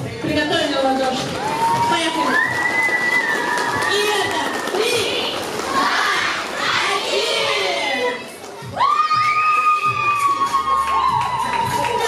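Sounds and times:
children shouting and cheering: 1.4s - 12.0s.

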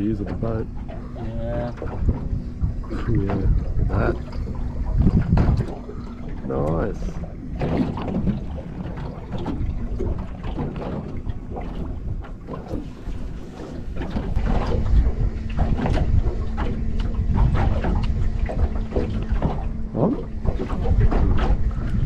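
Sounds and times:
water lapping against hull: 0.0s - 22.0s
wind buffeting microphone: 0.0s - 22.0s.

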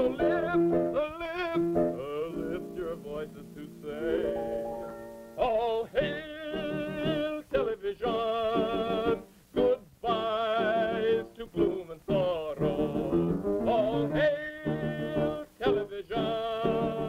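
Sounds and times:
light musical accompaniment: 0.0s - 17.0s
man singing with wavering vibrato: 0.0s - 17.0s.

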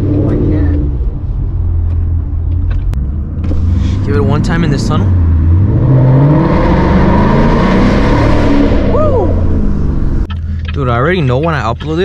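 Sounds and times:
car engine accelerating in tunnel: 0.0s - 10.3s.

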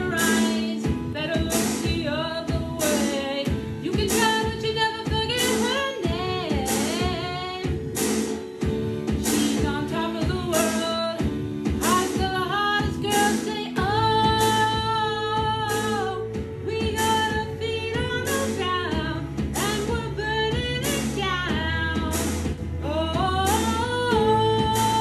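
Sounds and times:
instrumental accompaniment with beat: 0.0s - 25.0s
woman singing pop song: 0.0s - 25.0s.

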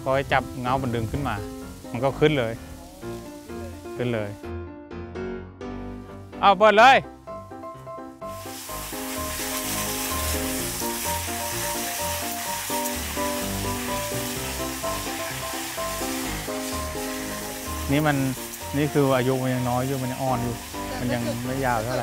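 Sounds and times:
water gushing from hose: 0.0s - 4.3s, 8.2s - 22.0s
background music: 0.0s - 22.0s.

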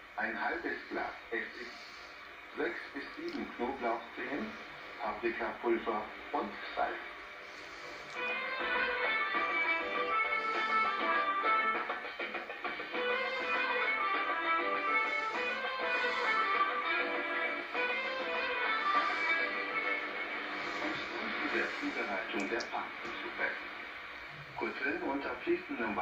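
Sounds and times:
music on shortwave radio: 0.0s - 26.0s.

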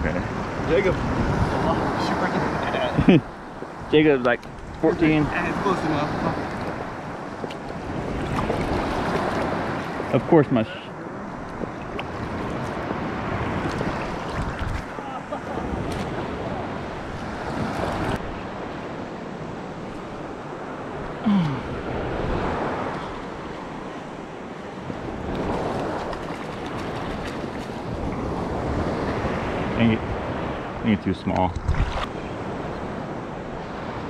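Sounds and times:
wind on microphone: 0.0s - 10.2s, 11.3s - 30.8s, 31.4s - 34.0s
surf and water lapping: 0.0s - 34.0s.

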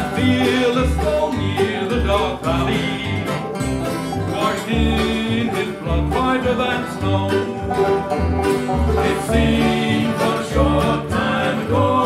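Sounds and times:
bluegrass band playing: 0.0s - 12.0s
upright bass pulsing: 0.0s - 12.0s.

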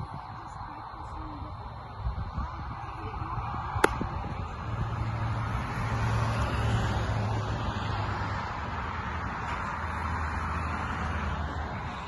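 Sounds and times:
ball popping into catcher's mitt: 3.8s - 4.1s.

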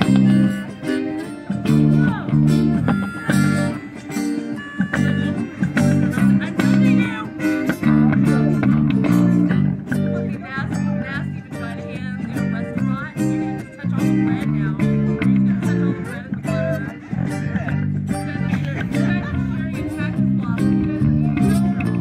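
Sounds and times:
electric guitar lead melody: 0.0s - 22.0s
strummed acoustic guitars: 0.0s - 22.0s
walking bass line: 0.0s - 22.0s.

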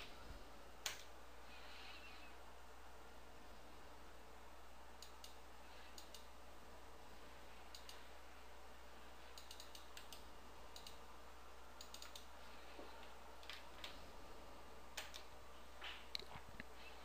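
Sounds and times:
low hum and hiss: 0.0s - 17.0s
computer mouse clicks: 0.8s - 1.1s, 5.0s - 6.3s, 7.7s - 8.1s, 9.3s - 11.0s, 11.8s - 12.3s, 15.0s - 15.3s.

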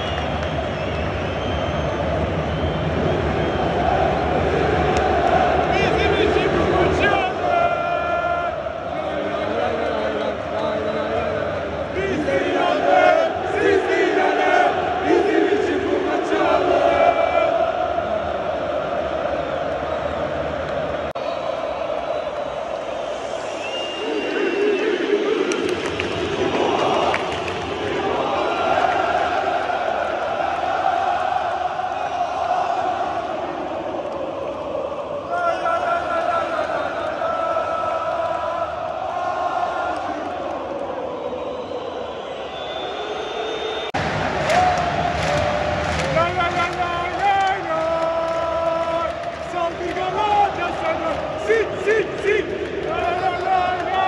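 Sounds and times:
stadium crowd chanting: 0.0s - 54.0s.

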